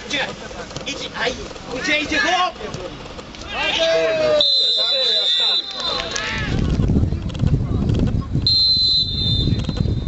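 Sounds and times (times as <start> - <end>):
referee's whistle blast: 4.4 - 6.1, 8.5 - 10.0.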